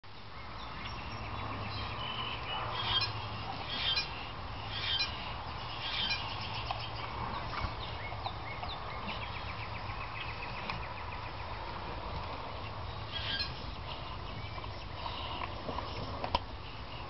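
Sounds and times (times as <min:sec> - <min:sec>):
birds chirping: 0:00.1 - 0:17.0
bird trill: 0:00.6 - 0:11.0, 0:13.1 - 0:15.3.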